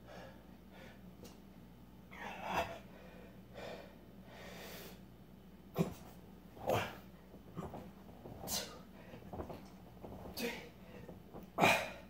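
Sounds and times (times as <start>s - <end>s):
man breathing hard: 2.3s - 5.0s.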